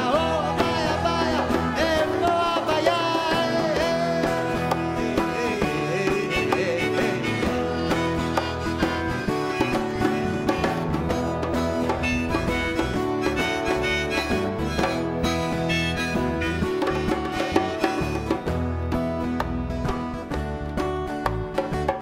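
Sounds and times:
acoustic guitar: 0:00.0 - 0:22.0
bass: 0:00.0 - 0:22.0
hand percussion: 0:00.0 - 0:22.0.

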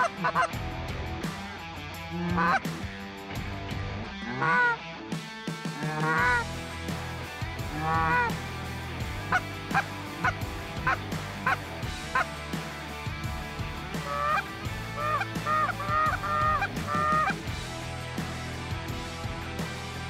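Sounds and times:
geese honking: 0:00.0 - 0:00.5, 0:02.2 - 0:02.7, 0:04.2 - 0:04.8, 0:05.8 - 0:06.4, 0:07.7 - 0:08.3, 0:09.3 - 0:12.3, 0:14.0 - 0:17.4.

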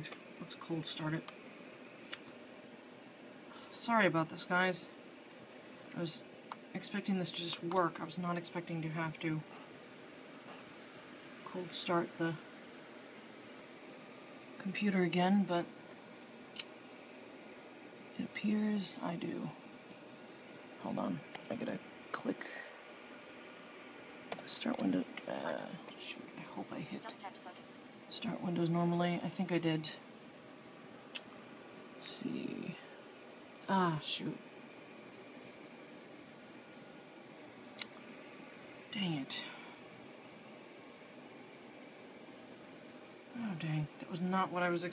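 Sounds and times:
low steady hiss: 0:00.0 - 0:44.9.

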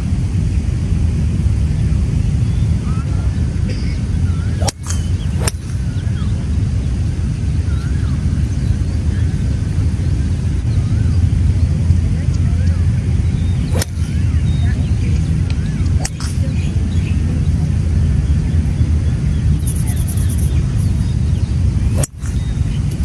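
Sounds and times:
steady low rumble: 0:00.0 - 0:23.0
birds chirping faintly: 0:01.8 - 0:23.0.

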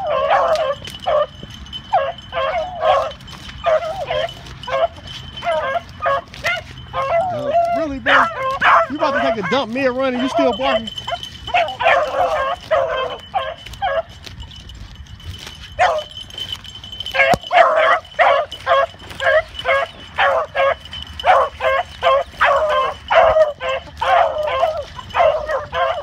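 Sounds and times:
dogs barking and baying: 0:00.0 - 0:26.0.

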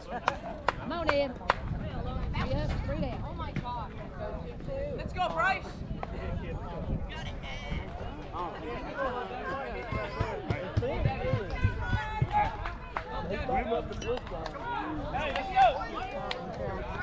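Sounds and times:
spectators chattering: 0:00.0 - 0:17.0.

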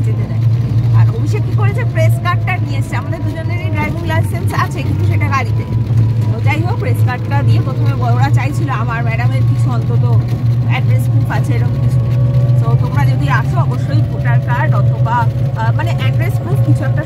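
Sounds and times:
vehicle engine drone: 0:00.0 - 0:17.0
woman talking: 0:00.0 - 0:17.0.

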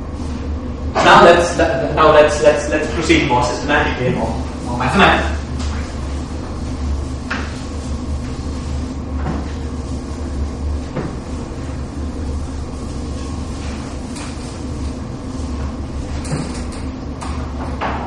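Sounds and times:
steady low hum: 0:00.0 - 0:18.0
duster wiping a blackboard: 0:00.1 - 0:16.8.

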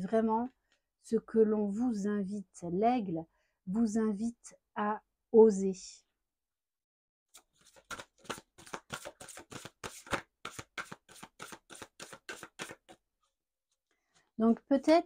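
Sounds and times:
cards being shuffled: 0:07.4 - 0:13.0.

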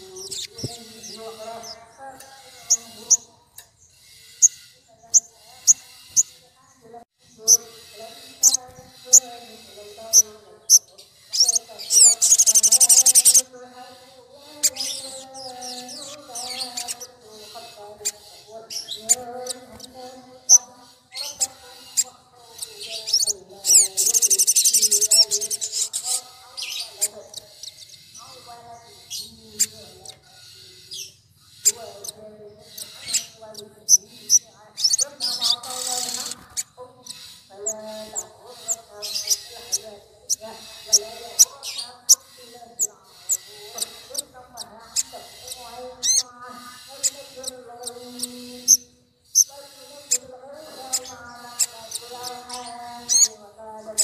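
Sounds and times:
birds chipping: 0:00.0 - 0:54.0
high rapid bird trills: 0:00.0 - 0:54.0.

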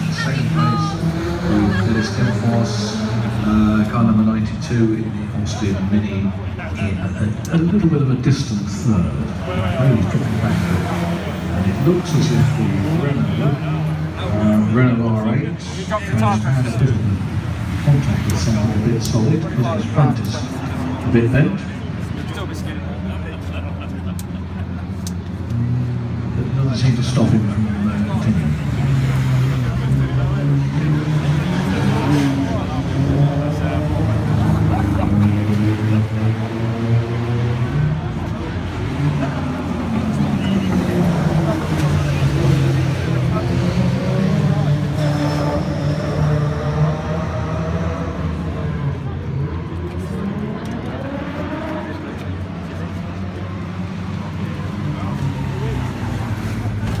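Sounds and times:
voices: 0:00.0 - 0:57.0.

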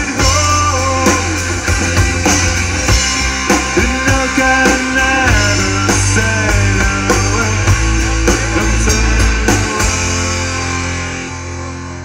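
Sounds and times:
drum kit: 0:00.0 - 0:12.0
rock band playing: 0:00.0 - 0:12.0.

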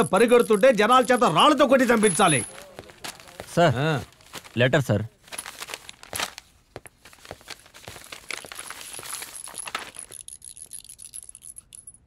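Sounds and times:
paper rustling and crinkling: 0:01.4 - 0:10.2.

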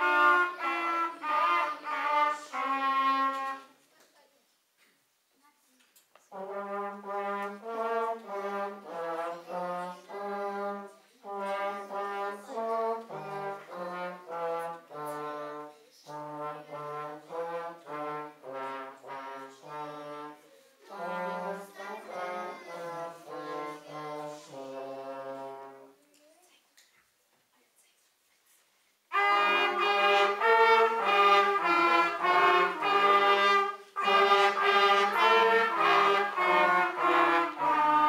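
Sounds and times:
brass ensemble playing slow tune: 0:00.0 - 0:03.7, 0:06.3 - 0:26.0, 0:29.1 - 0:38.0.

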